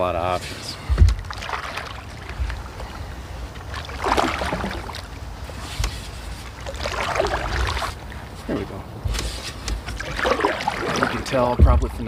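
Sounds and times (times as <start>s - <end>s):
canoe paddle splashing water: 1.0s - 8.3s, 9.2s - 11.8s.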